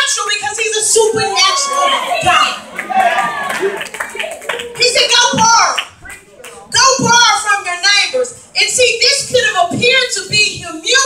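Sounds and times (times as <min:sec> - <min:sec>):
congregation calling out in praise: 0:00.4 - 0:06.9
scattered hand claps: 0:02.7 - 0:06.6.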